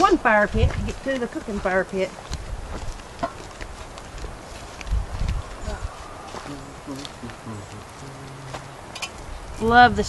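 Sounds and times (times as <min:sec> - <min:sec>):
footsteps on dry leaves and sticks: 0:00.1 - 0:09.5.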